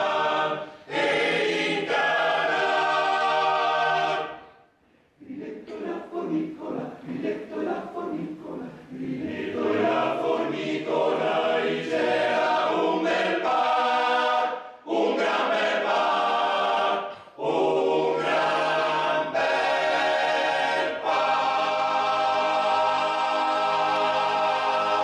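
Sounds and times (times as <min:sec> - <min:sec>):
male choir singing a cappella: 0:00.0 - 0:04.4, 0:05.2 - 0:25.0.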